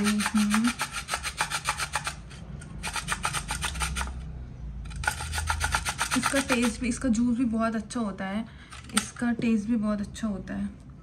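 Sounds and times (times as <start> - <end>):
beetroot rasping on grater: 0.0 - 4.2, 4.9 - 7.0.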